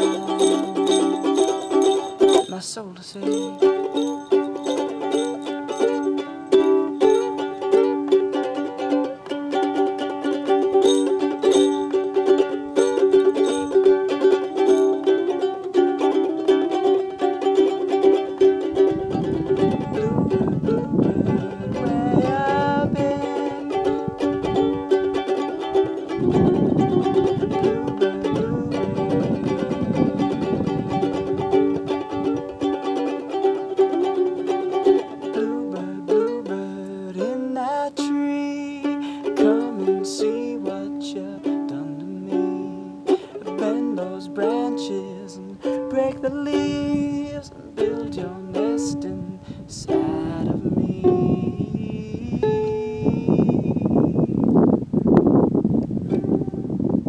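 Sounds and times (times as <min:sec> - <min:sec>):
ukulele strumming chords: 0:00.0 - 0:57.0.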